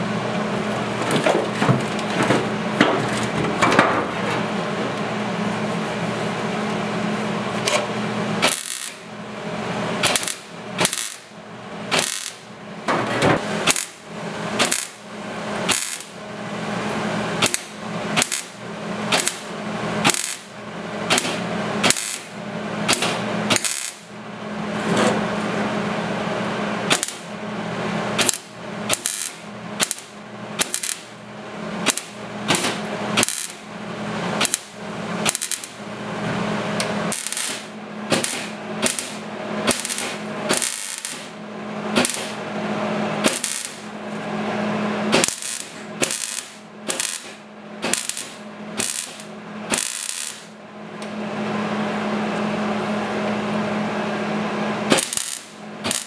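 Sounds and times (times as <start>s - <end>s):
steady welder hum: 0.0s - 56.0s
welding arc crackling: 8.3s - 9.2s, 9.9s - 12.6s, 13.5s - 16.3s, 17.1s - 24.2s, 26.8s - 27.4s, 28.0s - 44.2s, 45.0s - 50.6s, 54.9s - 56.0s.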